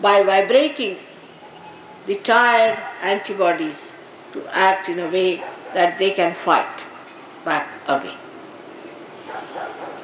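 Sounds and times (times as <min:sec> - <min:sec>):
room hiss: 0:00.0 - 0:10.0
faint dog barking: 0:02.7 - 0:03.2, 0:05.4 - 0:05.8, 0:09.2 - 0:10.0.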